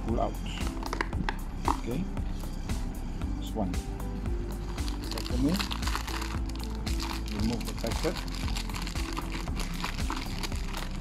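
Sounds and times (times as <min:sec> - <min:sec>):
background music with held notes: 0:00.0 - 0:11.0
foil packet crinkling: 0:04.8 - 0:11.0.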